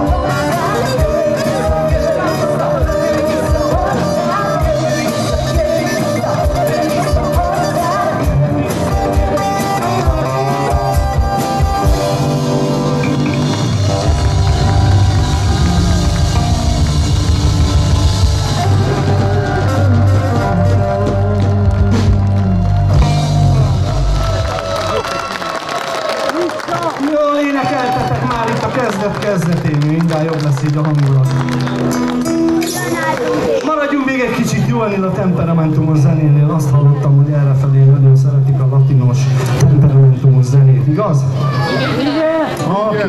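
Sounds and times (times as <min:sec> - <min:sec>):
acoustic guitar: 0:00.0 - 0:24.7, 0:30.3 - 0:40.4
drum kit: 0:00.0 - 0:25.0.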